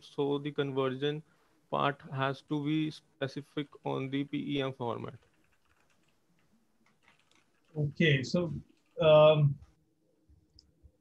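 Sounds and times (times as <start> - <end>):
typing on computer keyboard: 5.0 - 7.8, 8.7 - 9.0.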